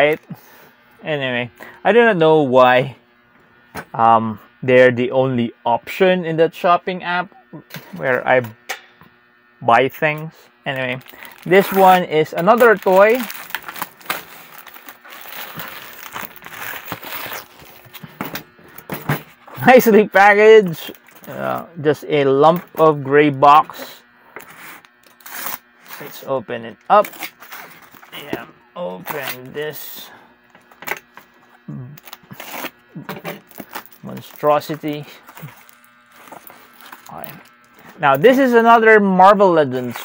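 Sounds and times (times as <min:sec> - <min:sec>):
wrapping clicks and crackles: 0:10.7 - 0:18.4, 0:33.4 - 0:38.2
plastic bag crinkling and rustling: 0:10.7 - 0:18.9, 0:33.4 - 0:38.0
tape tearing: 0:11.0 - 0:19.3, 0:24.4 - 0:26.2, 0:27.0 - 0:28.4, 0:29.0 - 0:29.5, 0:32.0 - 0:37.9
knife cutting tape and cardboard: 0:32.0 - 0:34.2.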